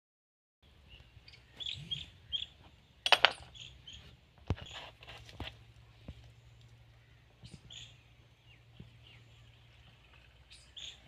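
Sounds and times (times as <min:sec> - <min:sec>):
small birds chirping: 0:00.6 - 0:11.0.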